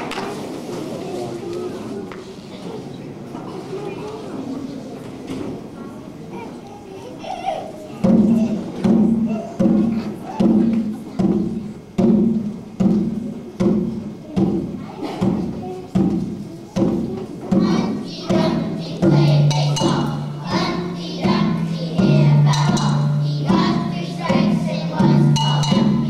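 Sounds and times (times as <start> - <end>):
drum beating slowly: 8.0 - 26.0
children's choir singing: 13.6 - 26.0.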